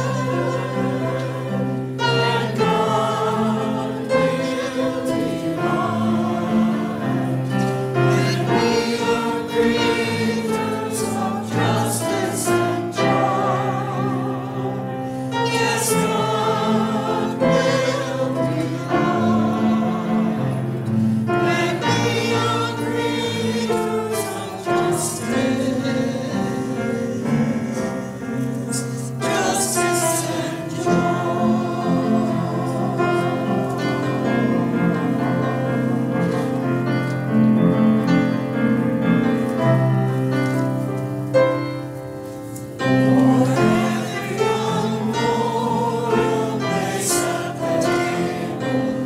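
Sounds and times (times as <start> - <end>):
choir and congregation singing hymn: 0.0 - 49.0.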